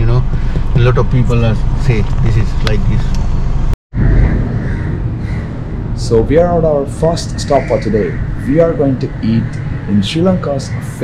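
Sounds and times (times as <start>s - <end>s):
outdoor background rumble: 0.0s - 11.0s.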